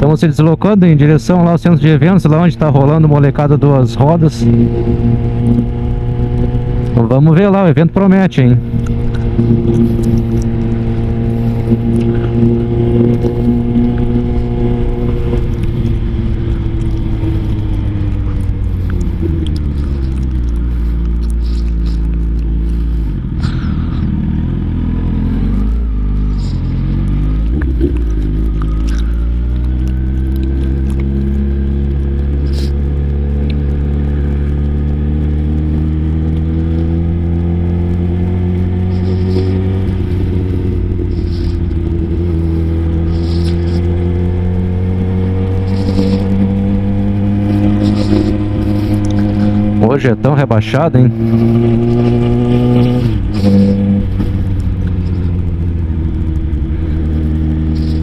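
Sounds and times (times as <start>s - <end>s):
motorcycle engine: 0.0s - 58.0s.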